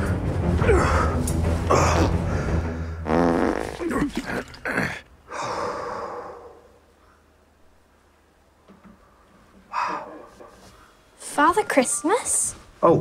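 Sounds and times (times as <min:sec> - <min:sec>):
fart noises: 0:03.0 - 0:04.8
long breathy sound: 0:05.3 - 0:07.4.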